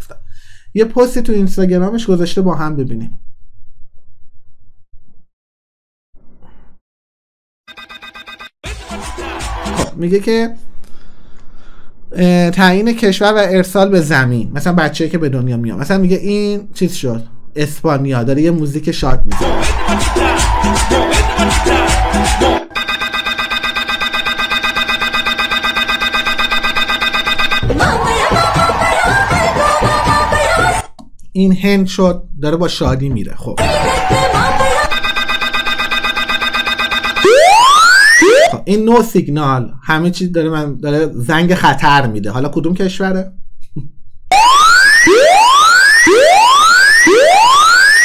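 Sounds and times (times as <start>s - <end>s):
electronic whooping alarm siren: 7.7s - 8.5s, 19.4s - 30.4s, 33.6s - 38.6s, 44.3s - 48.0s
rapidly pulsing tone: 22.7s - 28.1s, 33.6s - 38.5s.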